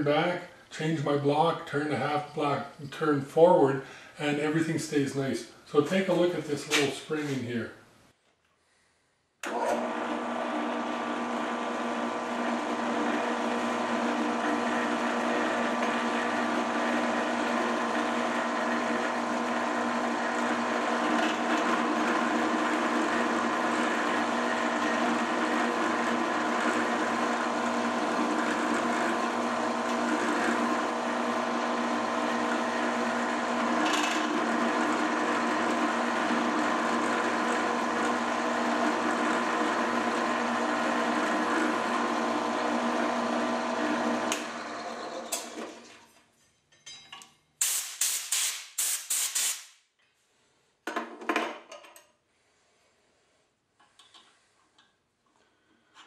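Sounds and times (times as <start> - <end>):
drill press running: 9.4 - 45.9
drill press spinning down: 9.4 - 45.9.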